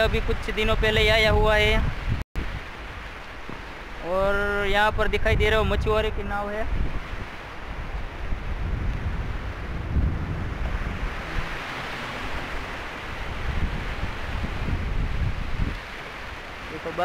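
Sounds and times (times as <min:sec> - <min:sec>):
surf washing over rocks: 0:00.0 - 0:17.0
wind buffeting microphone: 0:00.0 - 0:17.0.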